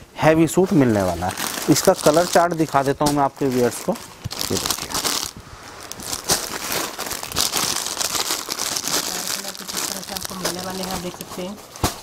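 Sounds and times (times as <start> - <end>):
plastic packaging crinkling: 0.8 - 12.0.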